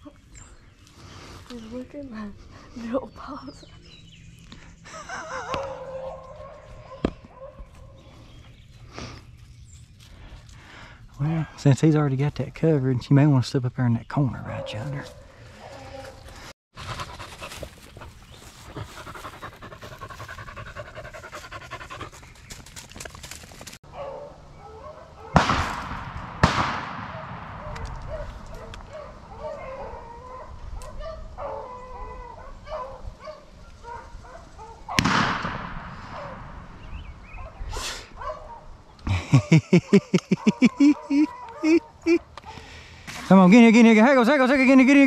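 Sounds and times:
dogs barking and yipping: 4.9 - 8.3, 14.4 - 22.5, 23.8 - 25.4, 27.6 - 35.1, 36.0 - 38.9, 39.8 - 42.7.

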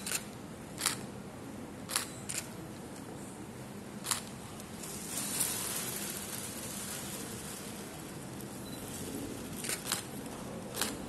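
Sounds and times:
room hiss: 2.6 - 11.0
plastic bag rustling: 4.8 - 9.9.

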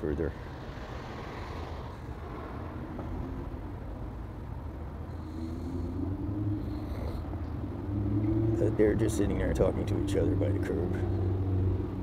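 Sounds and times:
car engine hum: 0.0 - 12.0
traffic rumble: 0.0 - 12.0.

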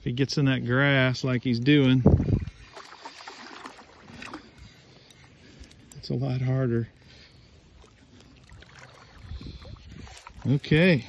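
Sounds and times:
faint water splashing: 1.4 - 11.0
wind gust on microphone: 2.0 - 2.6, 9.1 - 10.7.

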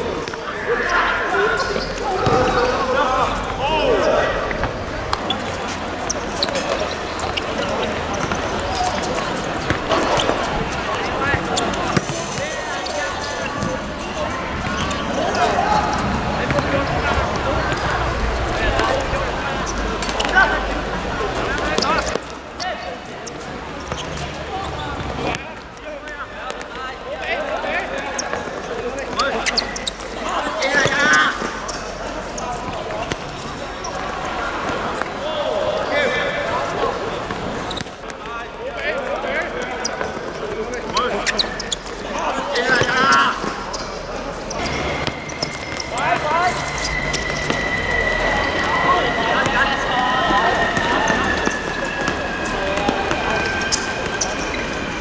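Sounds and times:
players shouting: 0.0 - 25.4, 26.0 - 55.0
football kicked and bouncing: 2.2 - 2.5.

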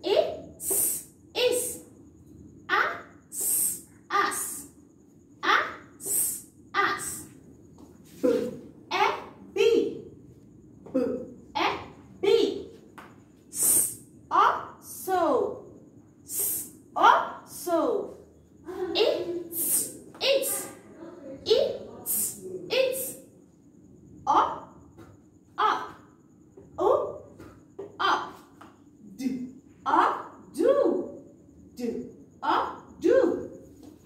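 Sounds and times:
woman saying phonics sounds: 0.0 - 1.8, 2.7 - 4.7, 5.4 - 7.3, 10.9 - 12.7, 13.6 - 15.6, 16.3 - 23.2, 25.6 - 26.1, 26.7 - 33.6.

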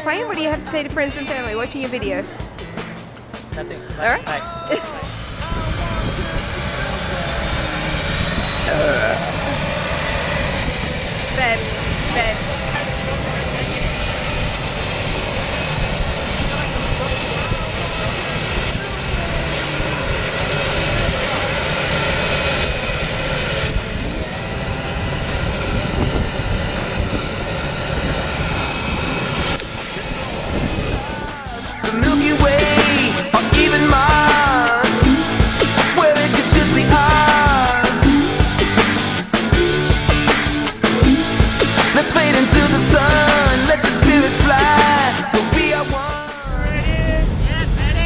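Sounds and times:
thin high whine: 0.0 - 46.4
aircraft engines droning: 0.0 - 48.0.

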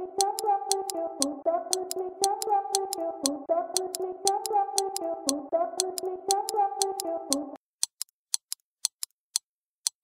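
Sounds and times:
synth chords: 0.0 - 7.6
crisp percussion ticks: 0.2 - 10.0.

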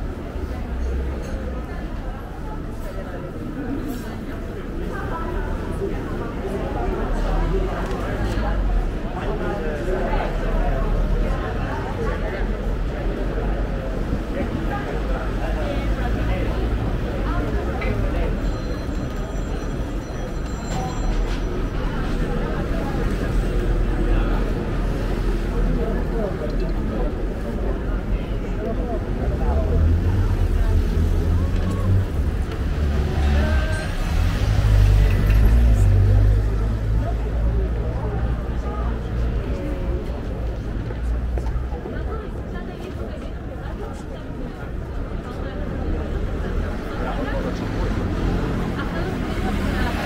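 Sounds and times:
indistinct chatter: 0.0 - 50.0
passersby talking: 0.0 - 50.0
car traffic rumble: 19.0 - 50.0.

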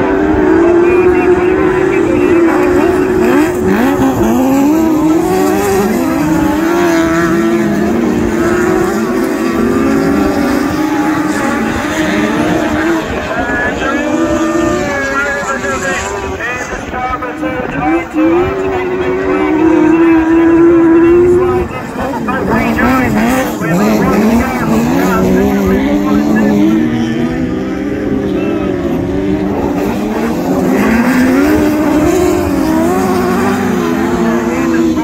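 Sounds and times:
racing car engines revving: 0.0 - 35.0.

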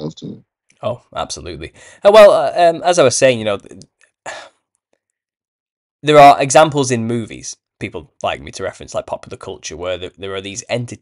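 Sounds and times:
person breathing: 1.7 - 2.0.

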